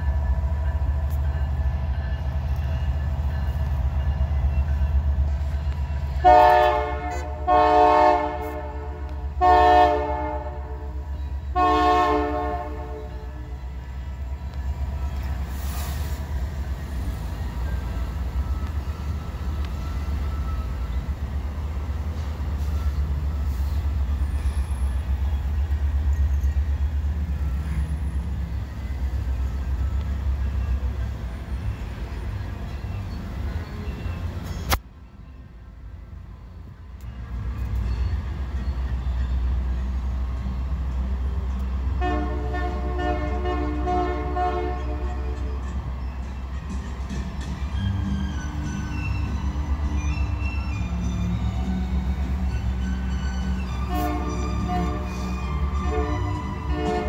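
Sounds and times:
freight train rumbling past: 0.0 - 57.0.

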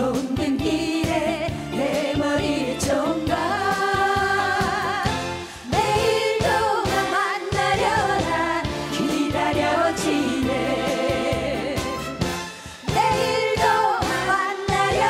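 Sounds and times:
women singing with live band: 0.0 - 11.8, 12.9 - 15.0.

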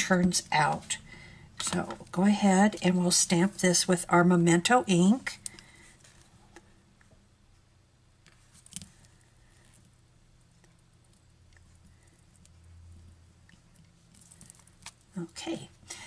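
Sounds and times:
faint low room hum: 0.0 - 16.0.

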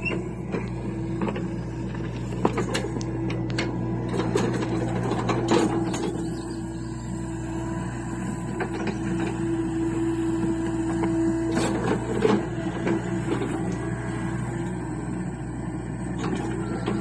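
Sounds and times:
excavator engine humming and whining: 0.0 - 17.0.

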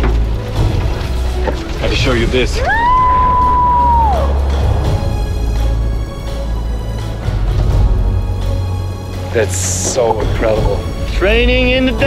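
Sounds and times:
background music: 0.0 - 12.0
woman whooping excitedly: 2.6 - 4.4.

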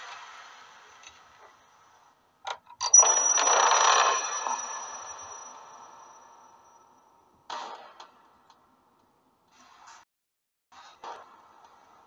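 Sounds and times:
thin high ringing tone: 2.8 - 7.2.

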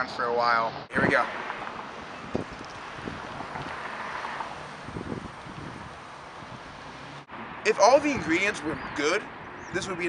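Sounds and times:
steady outdoor hiss: 0.0 - 10.0
wind buffeting microphone: 0.9 - 7.2.

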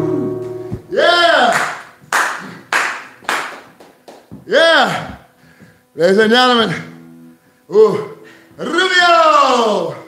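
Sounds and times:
man whooping: 0.9 - 1.9, 7.9 - 10.0
slow hand claps: 1.5 - 4.5.

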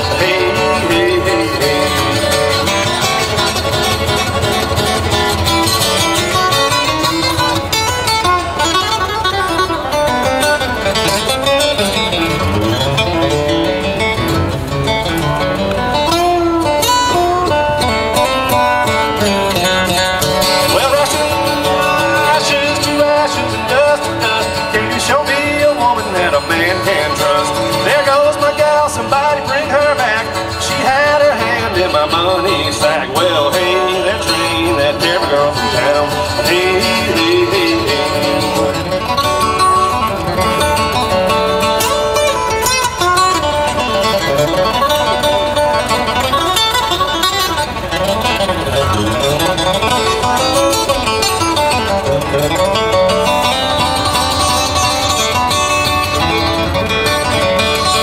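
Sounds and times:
acoustic guitar flatpicking: 0.0 - 58.0.

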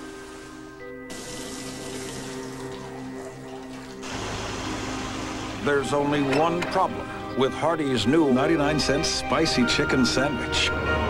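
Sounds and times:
water spraying and running: 0.0 - 6.9.

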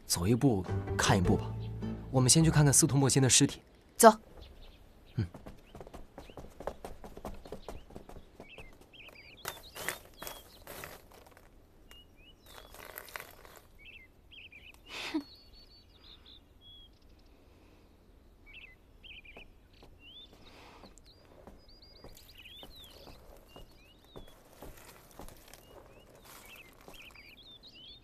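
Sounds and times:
birds chirping: 0.0 - 28.0
water poured onto flowers: 12.5 - 13.7.

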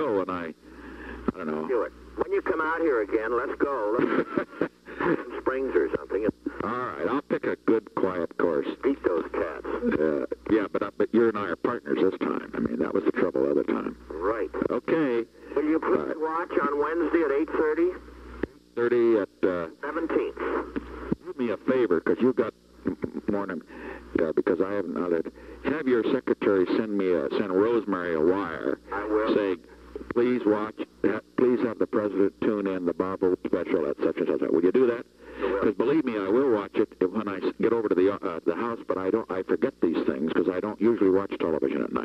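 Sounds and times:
men talking over telephone: 0.0 - 42.0.

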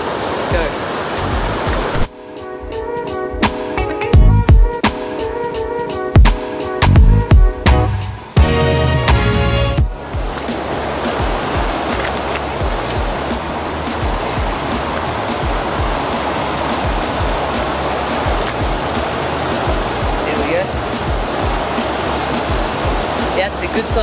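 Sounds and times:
water rushing over weir: 0.0 - 6.9, 7.5 - 24.0
background music: 0.5 - 24.0.

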